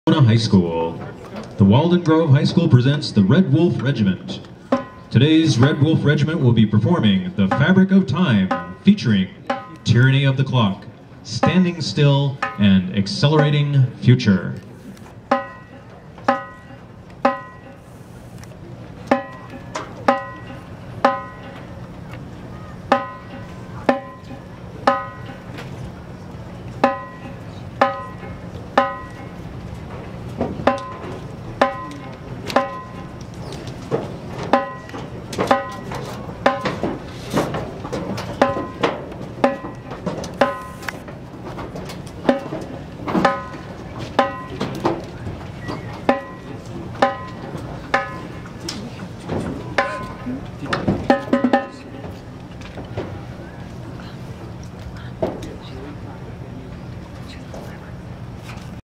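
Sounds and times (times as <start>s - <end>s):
low steady hum: 0.1s - 58.8s
percussion ticking clicks: 3.8s - 10.4s, 15.3s - 17.8s, 18.4s - 22.2s, 22.8s - 25.7s, 26.6s - 29.9s, 30.6s - 37.0s, 37.9s - 41.1s, 41.8s - 48.8s.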